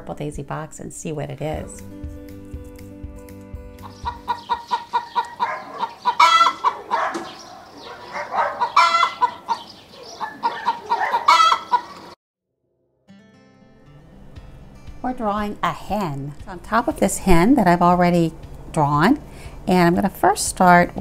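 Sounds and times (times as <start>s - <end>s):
chickens clucking: 3.8s - 12.2s.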